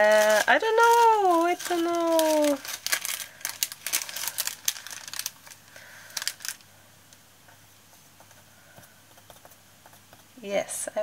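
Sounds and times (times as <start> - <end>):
foil and paper crinkling: 0.0 - 6.7.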